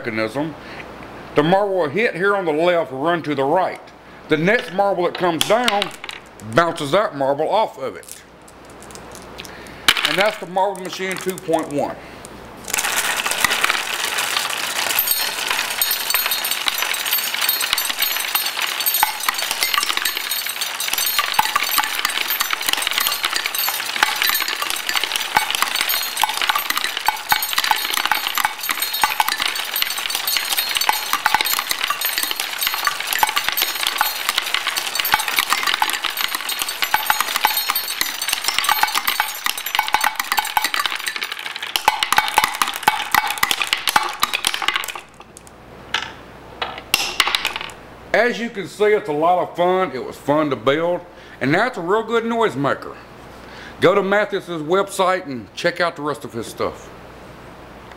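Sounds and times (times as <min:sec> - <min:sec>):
marbles clattering through wooden tracks: 0:04.5 - 0:06.8, 0:08.0 - 0:11.9, 0:12.6 - 0:47.8.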